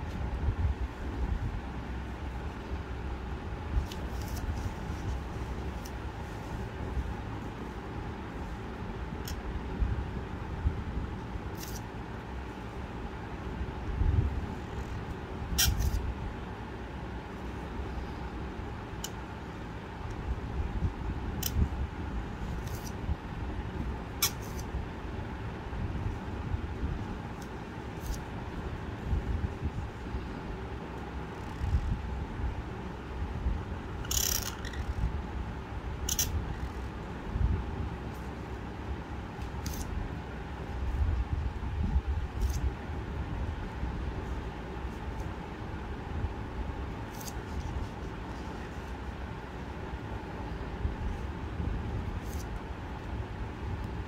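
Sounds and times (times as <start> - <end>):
low background rumble: 0.0 - 54.0.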